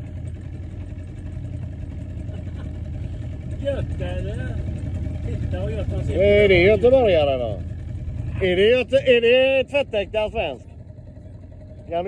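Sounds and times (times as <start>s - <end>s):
motorboat engine running: 0.0s - 12.0s.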